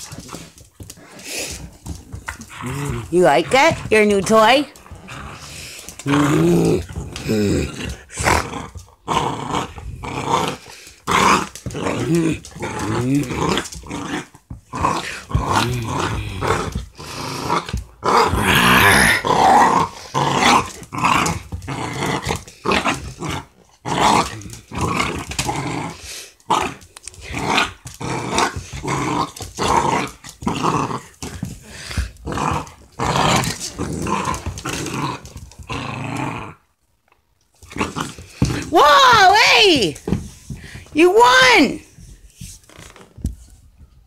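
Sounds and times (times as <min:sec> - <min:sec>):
puppy play growling: 0:00.0 - 0:36.8, 0:37.5 - 0:41.0.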